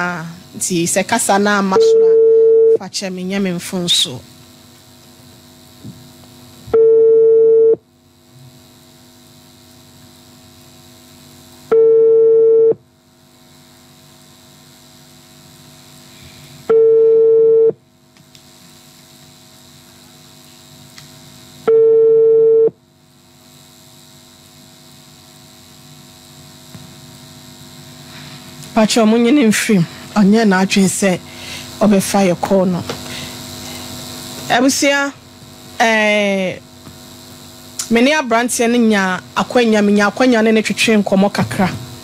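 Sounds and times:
telephone ringback tone: 0:01.8 - 0:02.8, 0:06.8 - 0:07.8, 0:11.7 - 0:12.8, 0:16.7 - 0:17.8, 0:21.7 - 0:22.8.

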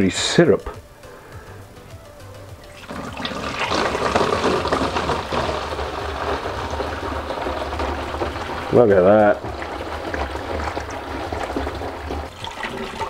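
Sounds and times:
liquid pouring and splashing: 0:02.6 - 0:13.0.

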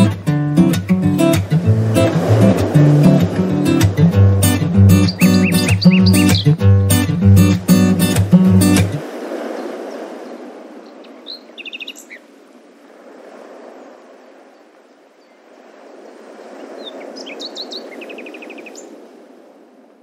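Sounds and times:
soft outdoor rushing noise: 0:00.1 - 0:14.5
birds chirping and trilling: 0:01.8 - 0:06.7, 0:09.5 - 0:12.3, 0:16.6 - 0:19.0.

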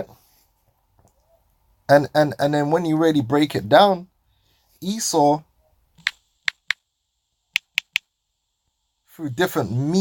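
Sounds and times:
touchscreen keyboard taps: 0:07.6 - 0:08.0.

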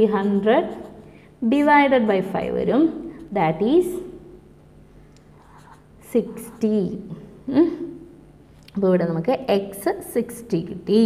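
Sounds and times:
pen scratching on paper: 0:05.4 - 0:06.8.

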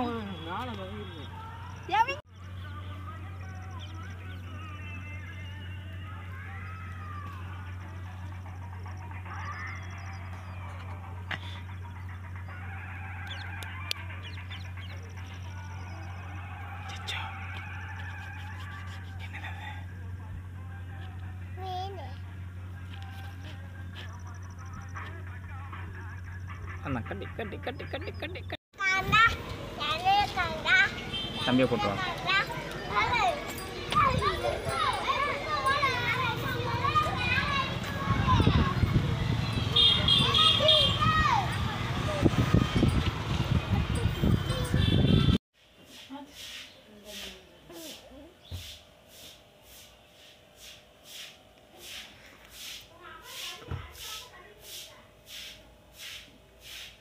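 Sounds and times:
young children talking and calling: 0:01.1 - 0:12.1, 0:21.4 - 0:22.4, 0:28.8 - 0:45.4, 0:51.8 - 0:55.4.

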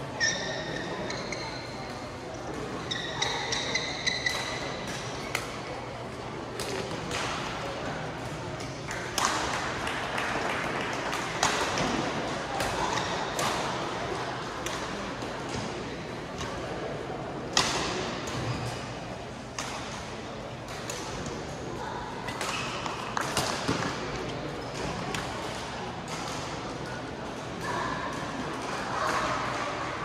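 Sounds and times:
chatter in sports hall: 0:00.0 - 0:30.0.

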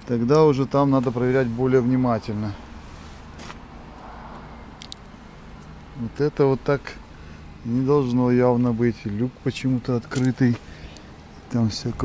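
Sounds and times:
outdoor background hum: 0:00.0 - 0:12.0.

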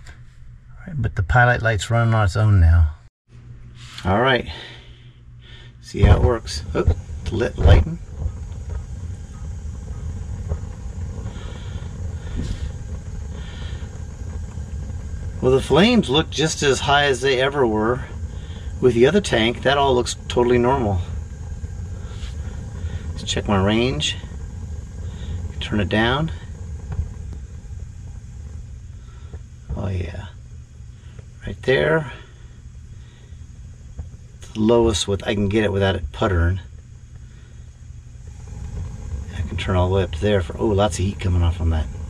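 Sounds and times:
gas flames rumbling: 0:00.0 - 0:42.0
faint gas hisses: 0:03.6 - 0:42.0.

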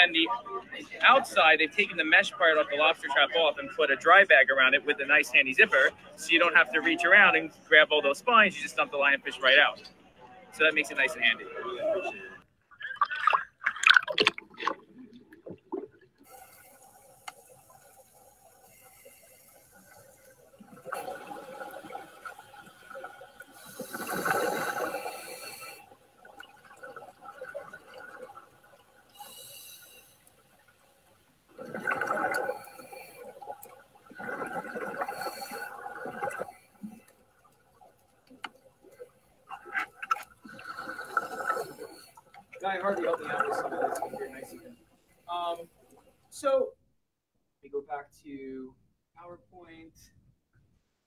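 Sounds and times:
water splash: 0:12.8 - 0:16.8, 0:31.5 - 0:37.0
gurgling regulator bubbles underwater: 0:12.8 - 0:30.0, 0:31.5 - 0:37.1, 0:38.8 - 0:44.7.

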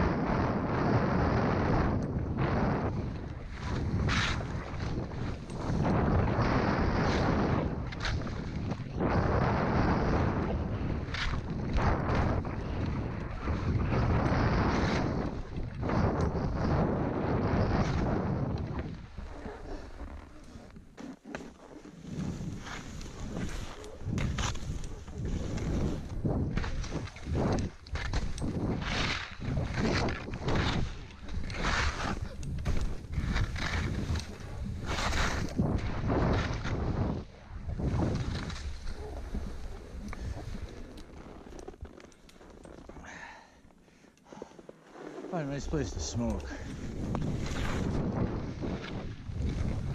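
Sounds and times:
wind buffeting microphone: 0:00.0 - 0:20.7, 0:22.0 - 0:42.0, 0:45.5 - 0:49.9
skis swishing through snow: 0:02.5 - 0:43.6, 0:44.3 - 0:49.9.

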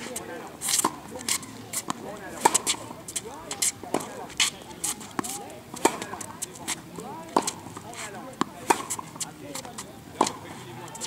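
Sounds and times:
tennis ball struck by rackets: 0:00.6 - 0:11.0
tennis ball bouncing on court: 0:00.7 - 0:11.0.

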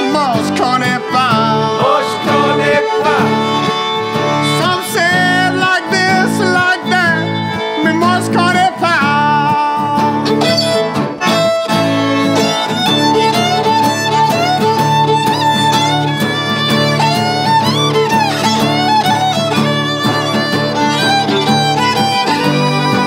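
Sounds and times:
accordion: 0:00.0 - 0:23.0
acoustic guitar chords: 0:00.0 - 0:23.0
fiddle melody: 0:00.0 - 0:23.0.

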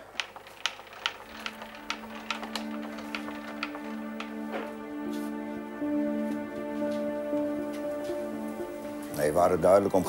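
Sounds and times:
shelving handwheel clicking: 0:00.0 - 0:04.8
soft background music: 0:00.9 - 0:10.0.

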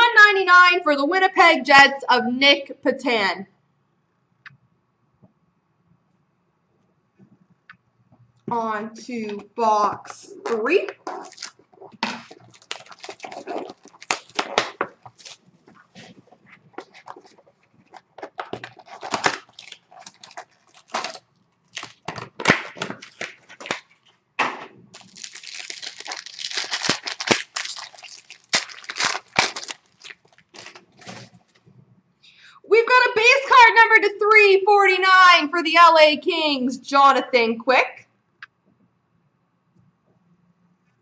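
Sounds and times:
cardboard rustling: 0:10.1 - 0:24.1, 0:25.0 - 0:31.7
plastic wrap tearing and crinkling: 0:10.3 - 0:24.1, 0:24.9 - 0:31.6.

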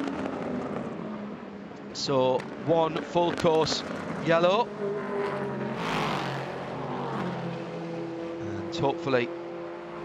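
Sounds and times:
race cars passing at speed: 0:00.0 - 0:10.0.

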